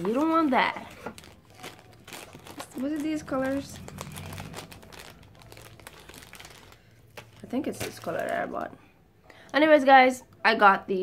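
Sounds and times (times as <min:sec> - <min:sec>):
packaging crinkling: 0:00.0 - 0:08.8.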